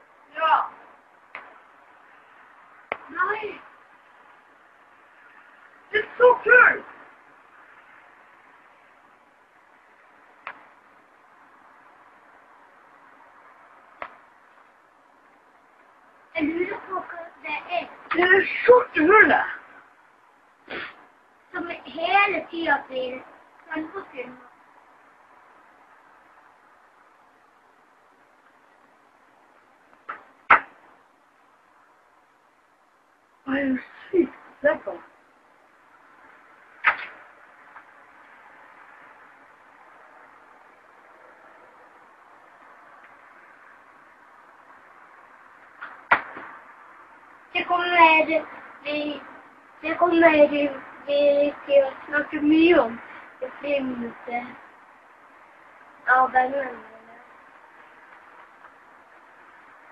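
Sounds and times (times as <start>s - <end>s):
faint steady hiss: 0.0s - 59.9s
sharp click: 36.8s - 37.2s.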